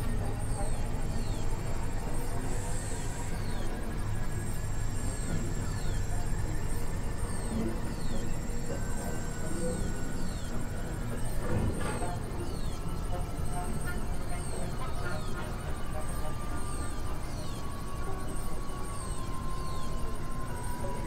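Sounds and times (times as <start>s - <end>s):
high electronic whine: 0.0s - 21.0s.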